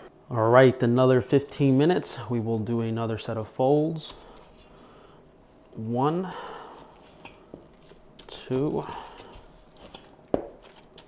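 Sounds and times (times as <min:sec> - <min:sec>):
faint handling sounds: 0:01.3 - 0:11.0.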